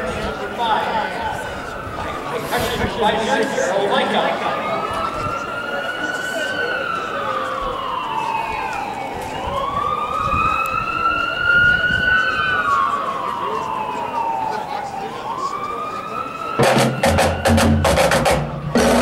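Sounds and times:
siren wailing: 0:00.0 - 0:19.0.

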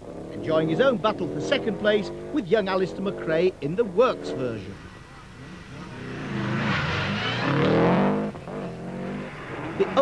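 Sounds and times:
rally car engine accelerating: 0:00.0 - 0:10.0.

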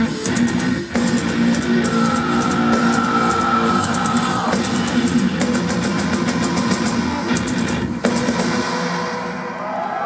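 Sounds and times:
heavy metal band playing live: 0:00.0 - 0:09.9
pounding drums and cymbals: 0:00.0 - 0:10.0.

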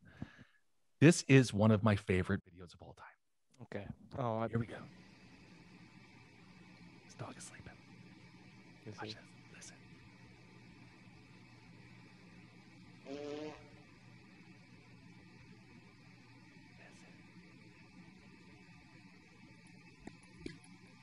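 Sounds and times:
short buzzy tone: 0:13.0 - 0:13.8.

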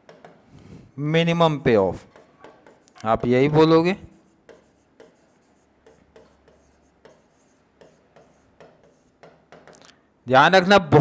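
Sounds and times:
stylus tapping and scratching glass: 0:02.1 - 0:03.7, 0:04.4 - 0:09.9.

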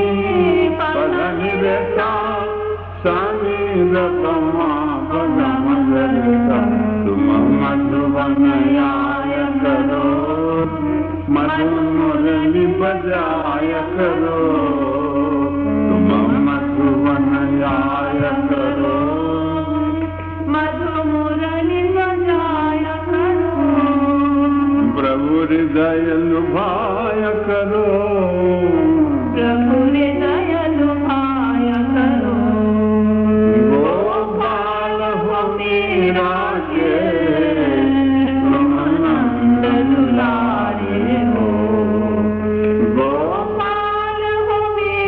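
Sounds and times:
solo devotional singing: 0:00.0 - 0:45.0
steady drone: 0:00.0 - 0:45.0.

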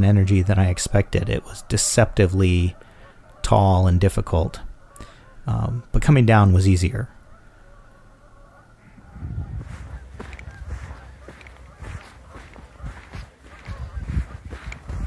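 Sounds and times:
distant waterfowl honking: 0:00.0 - 0:15.0
wind rumble on microphone: 0:08.8 - 0:15.0.

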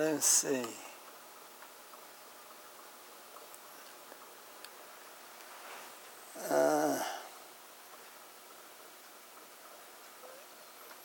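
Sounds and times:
man groaning: 0:06.3 - 0:07.4.

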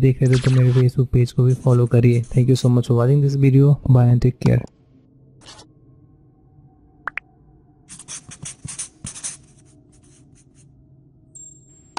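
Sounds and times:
marker writing on whiteboard: 0:07.9 - 0:10.6.

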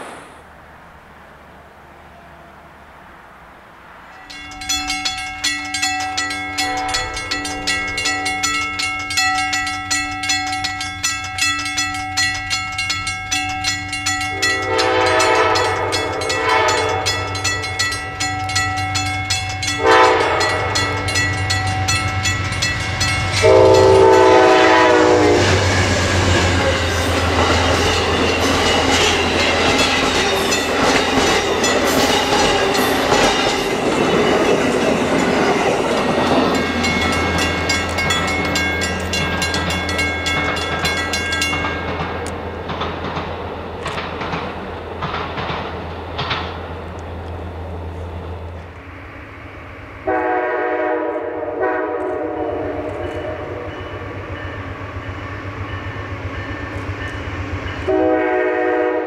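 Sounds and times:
train wheels clattering: 0:04.2 - 0:48.8
train horn blasts: 0:14.3 - 0:17.7, 0:19.6 - 0:21.2, 0:23.2 - 0:28.9, 0:50.0 - 0:54.2, 0:57.8 - 0:59.0.

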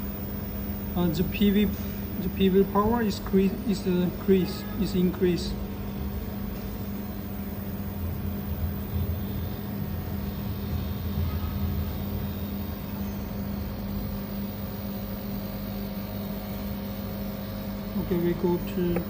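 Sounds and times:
dehumidifier humming: 0:00.0 - 0:19.0.

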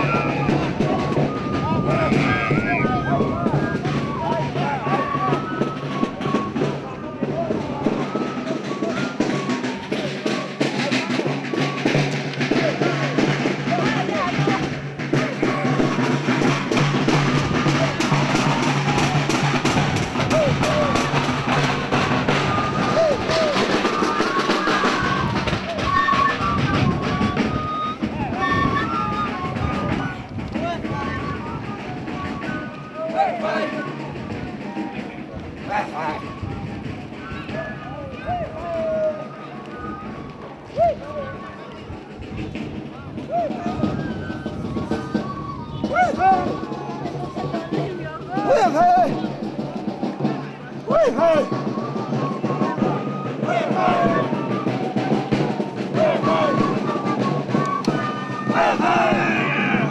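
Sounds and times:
large drums beating: 0:00.0 - 0:59.9
voices: 0:00.0 - 0:59.9.

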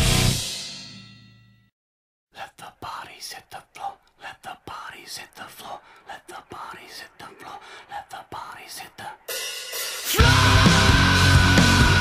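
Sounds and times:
person whispering: 0:02.3 - 0:09.4.

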